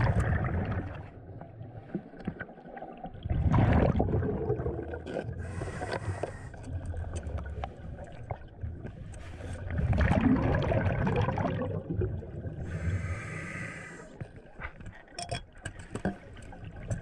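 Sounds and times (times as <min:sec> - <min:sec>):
exhaled bubbles rushing underwater: 0:00.0 - 0:13.6
hissing inhalation through regulator: 0:05.4 - 0:06.6, 0:12.6 - 0:14.2.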